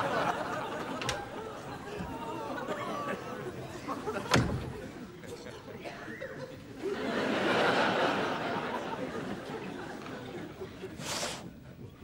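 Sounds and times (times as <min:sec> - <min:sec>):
audience chatter murmur: 0:00.0 - 0:12.0.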